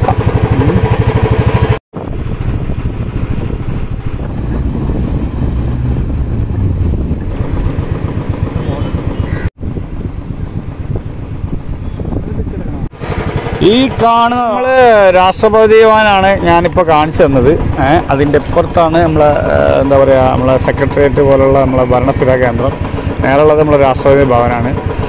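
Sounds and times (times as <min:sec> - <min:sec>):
motorcycle engine running: 0:00.0 - 0:25.0.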